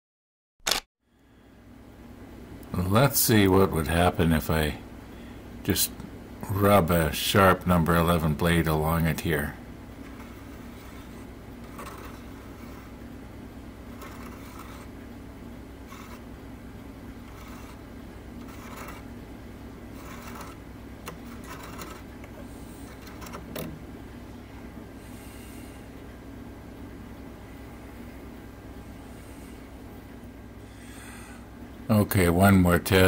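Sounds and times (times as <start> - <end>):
steady low hum: 1.0 - 33.0.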